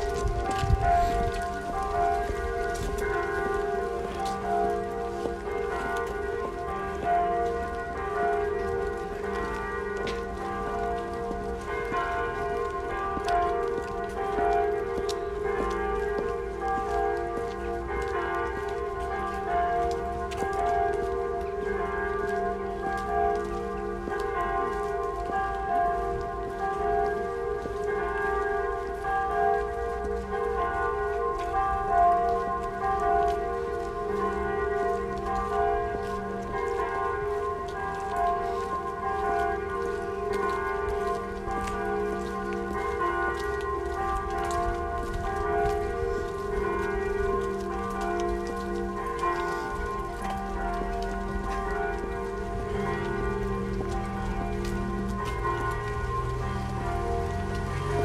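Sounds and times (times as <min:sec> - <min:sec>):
church bells ringing: 0:00.0 - 0:58.0.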